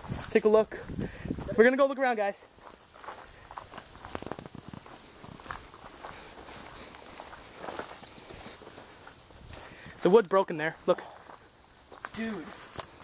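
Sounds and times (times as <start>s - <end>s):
footsteps through weeds: 2.5s - 10.1s, 11.2s - 13.0s
plants swishing against legs: 3.0s - 10.1s.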